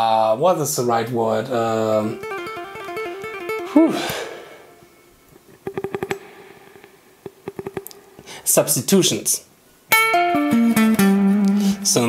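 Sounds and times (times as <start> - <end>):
electric guitar notes: 1.7 - 8.0, 9.9 - 12.0
guitar string clicks: 5.3 - 8.0.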